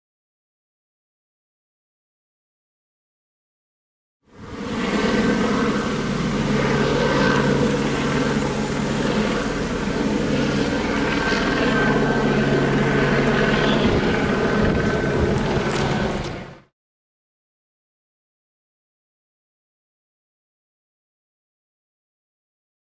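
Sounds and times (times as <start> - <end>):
steady engine drone: 4.3 - 16.7.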